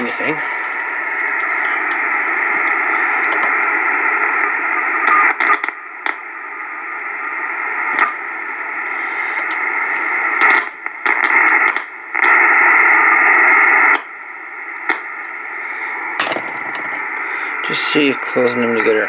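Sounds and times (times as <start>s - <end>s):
radio receiver static hiss: 0.0s - 19.0s.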